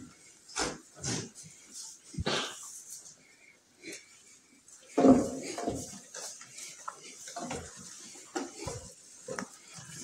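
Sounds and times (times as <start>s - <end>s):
goats making breathy sounds: 1.0s - 10.0s.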